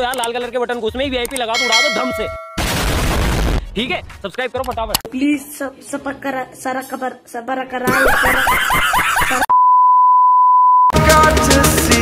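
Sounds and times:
censor bleep tone: 0:09.5 - 0:10.9.

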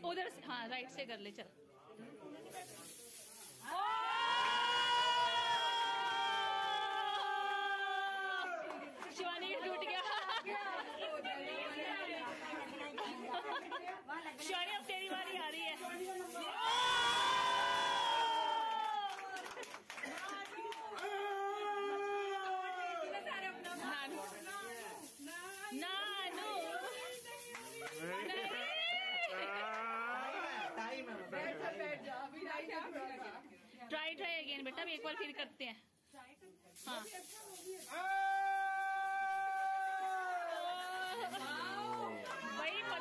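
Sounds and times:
group of people chattering: 0:00.0 - 0:03.8, 0:08.4 - 0:16.7, 0:22.0 - 0:38.1, 0:40.4 - 0:43.0
women chattering: 0:08.8 - 0:16.6, 0:23.0 - 0:29.7.

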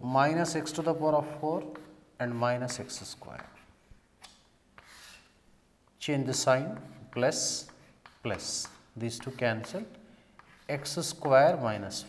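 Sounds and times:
chalk scraping on blackboard: 0:00.3 - 0:03.8, 0:04.8 - 0:05.6, 0:06.3 - 0:12.0
chalk tapping on blackboard: 0:00.4 - 0:05.4, 0:06.3 - 0:12.0.

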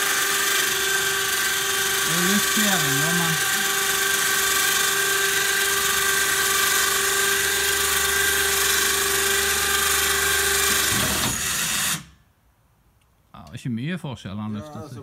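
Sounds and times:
electric winch motor whining: 0:00.0 - 0:12.2.

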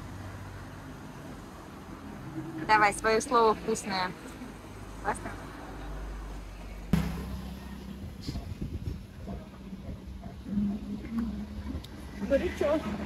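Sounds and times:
vehicle engine humming: 0:00.0 - 0:13.0.

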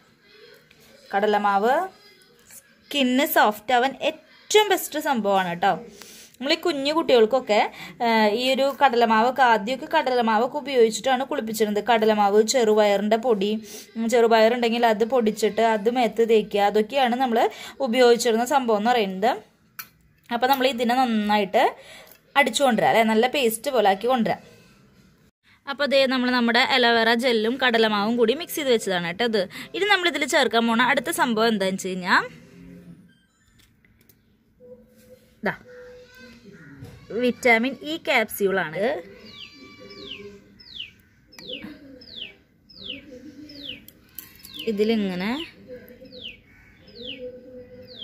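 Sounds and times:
woman speaking: 0:25.7 - 0:32.4, 0:35.4 - 0:35.8, 0:37.1 - 0:39.3, 0:44.6 - 0:46.2.

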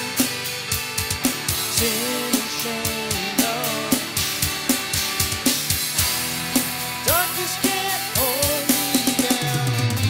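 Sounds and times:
drum kit beat: 0:00.0 - 0:10.0
melody with bent notes: 0:00.0 - 0:10.0
strummed guitar chords: 0:00.0 - 0:10.0.

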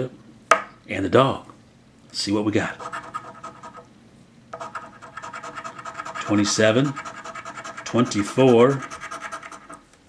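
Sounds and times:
coin scratching lottery ticket: 0:02.8 - 0:03.8, 0:04.6 - 0:09.8.

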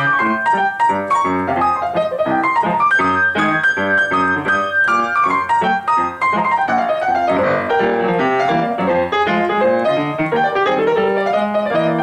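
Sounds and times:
stride jazz piano: 0:00.0 - 0:12.0.

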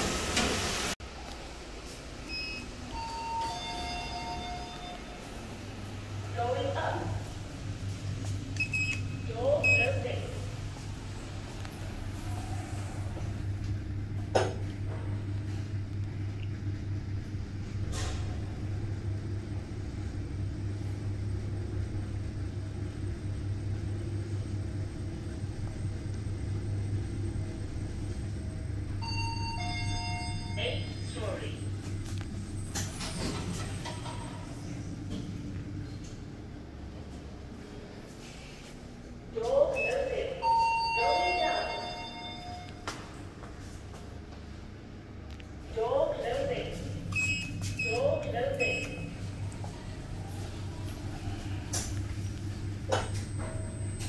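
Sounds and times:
lift hum and rumble: 0:00.0 - 0:54.0
recorded voice announcement: 0:06.3 - 0:07.2, 0:09.3 - 0:10.5, 0:30.5 - 0:31.7, 0:39.3 - 0:42.3, 0:45.7 - 0:46.9, 0:47.8 - 0:49.1
two-tone electronic chime: 0:40.5 - 0:42.7.

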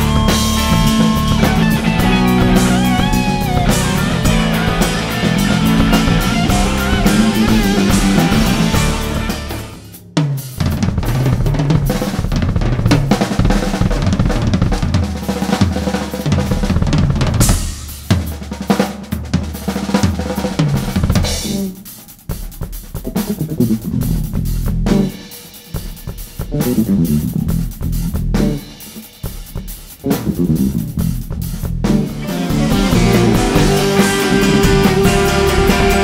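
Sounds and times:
low electric bass notes: 0:00.0 - 0:10.0, 0:26.6 - 0:28.7, 0:30.1 - 0:36.0
drum kit playing funk-rock: 0:00.0 - 0:36.0.

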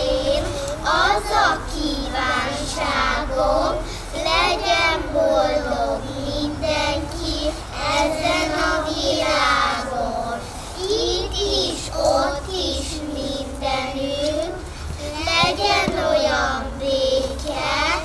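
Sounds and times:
children singing: 0:00.0 - 0:18.0.

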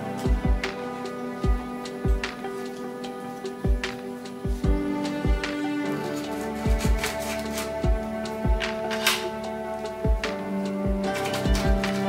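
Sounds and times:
sustained music tones: 0:00.0 - 0:12.0
low drum beat: 0:00.3 - 0:02.4, 0:03.6 - 0:05.8, 0:07.8 - 0:08.8, 0:10.0 - 0:12.0.

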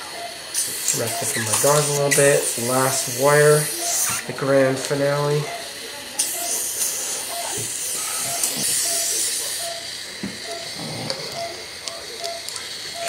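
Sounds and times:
patient monitor beeping: 0:00.0 - 0:13.0
hiss: 0:00.5 - 0:04.2, 0:06.1 - 0:09.8.

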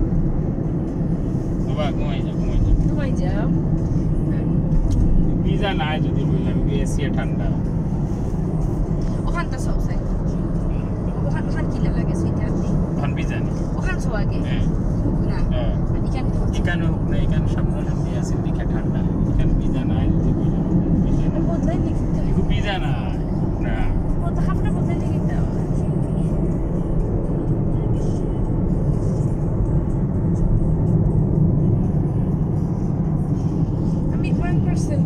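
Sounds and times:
road and engine rumble inside car: 0:00.0 - 0:35.0.

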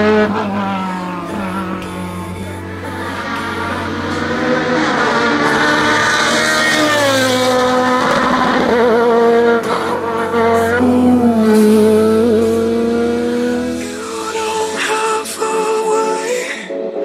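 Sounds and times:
race car engine revving: 0:00.0 - 0:15.2
background music: 0:00.0 - 0:17.0.

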